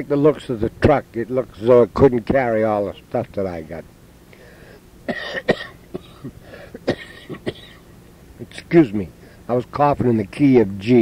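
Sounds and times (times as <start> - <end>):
man talking: 0.0 - 3.9, 8.4 - 11.0
man coughing: 5.1 - 7.8.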